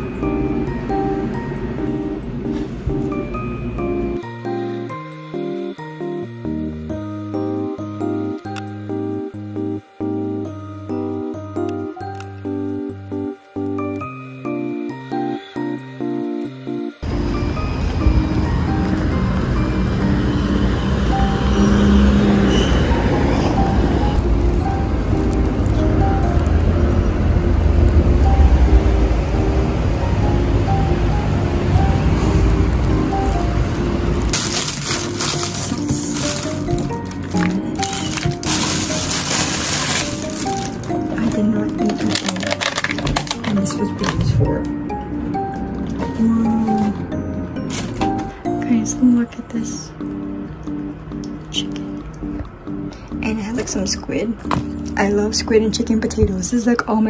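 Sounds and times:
street noise rumble: 0.0s - 4.2s, 17.0s - 57.0s
background music: 0.0s - 57.0s
plastic bag crinkling: 34.2s - 44.3s.

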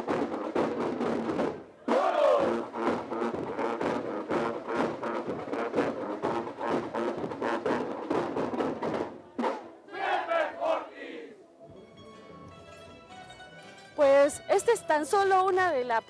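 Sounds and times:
drums beating: 0.0s - 10.8s
marching band playing: 0.0s - 11.2s.

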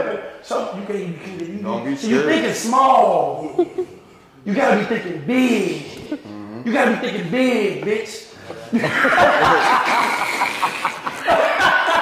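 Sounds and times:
men laughing loudly: 3.4s - 4.1s, 8.6s - 12.0s.

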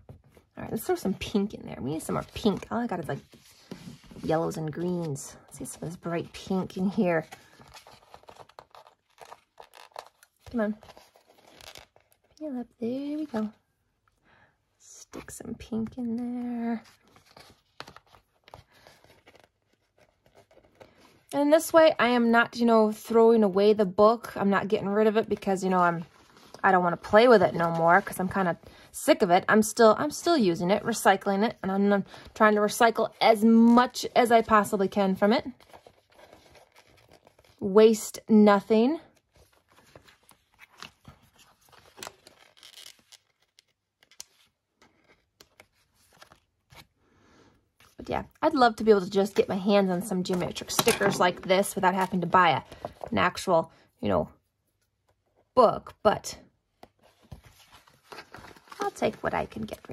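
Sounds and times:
paper rustling: 2.0s - 12.4s, 16.4s - 21.2s, 35.5s - 37.6s, 39.3s - 46.9s, 49.2s - 53.2s, 56.8s - 59.9s.

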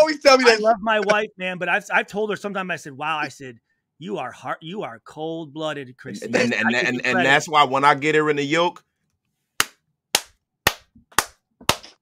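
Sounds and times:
slow hand claps: 9.6s - 12.0s.

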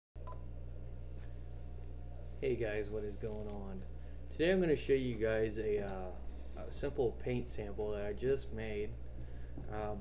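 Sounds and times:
low electrical hum: 0.2s - 10.0s.

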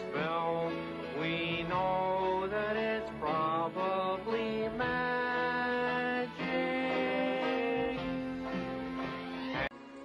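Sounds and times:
man singing slow song: 0.0s - 8.6s
banjo: 0.0s - 9.2s.

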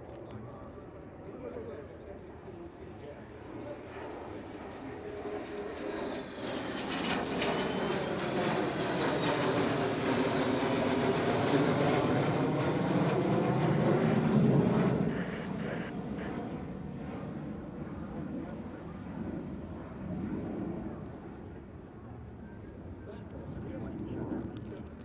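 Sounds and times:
jet fighters roaring overhead: 0.0s - 25.0s.

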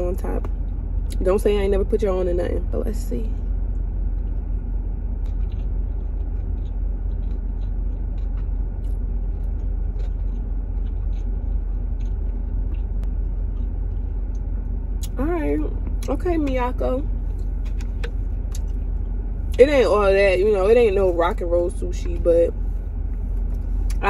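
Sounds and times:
car idling from inside cabin: 0.0s - 24.0s.

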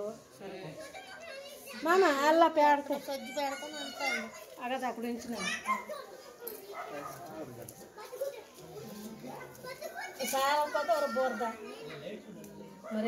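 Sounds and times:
children talking: 0.0s - 13.0s.

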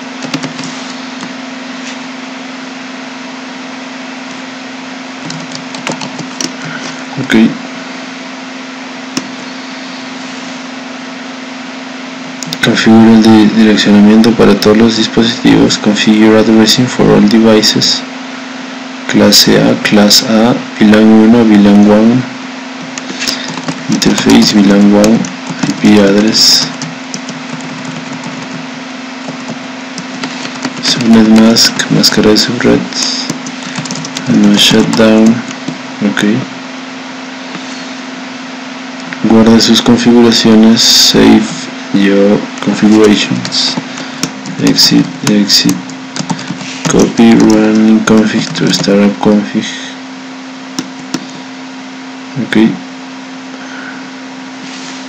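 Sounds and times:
background hum and hiss: 0.0s - 55.0s.

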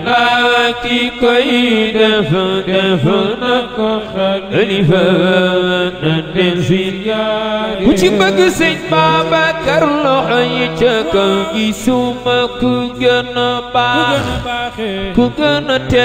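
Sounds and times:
man chanting religious song: 0.0s - 16.0s.

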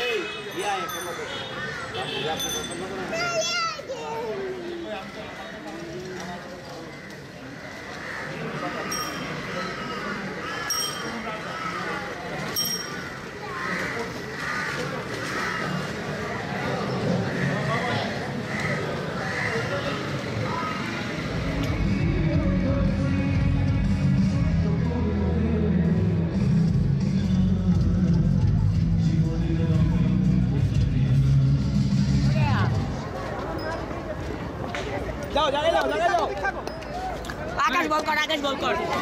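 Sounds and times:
voices: 0.0s - 26.4s, 32.1s - 39.0s
city noise: 0.0s - 39.0s.

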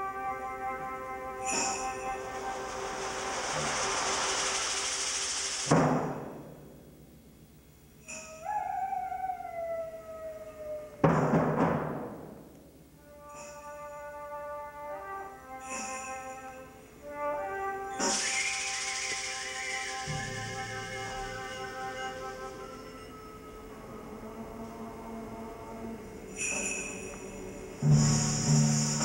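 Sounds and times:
loud percussion strike: 1.5s - 6.8s, 18.0s - 21.3s
falling sliding tone: 1.6s - 5.8s.

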